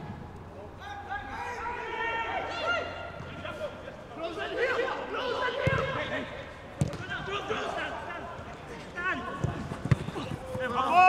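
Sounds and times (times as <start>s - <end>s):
players shouting: 0.7s - 11.0s
football kicked thuds: 6.8s - 7.1s, 9.4s - 10.3s.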